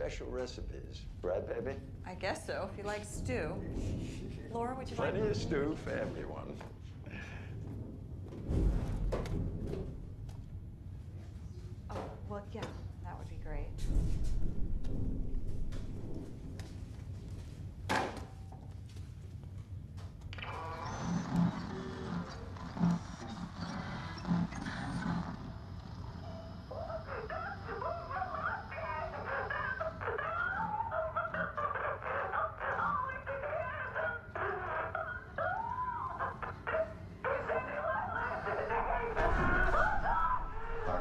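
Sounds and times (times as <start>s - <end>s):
low rumble: 0.0s - 11.6s, 12.9s - 17.8s, 38.2s - 41.0s
low thuds: 13.3s - 16.9s
animal-like whining cries: 20.4s - 24.8s, 26.5s - 41.0s.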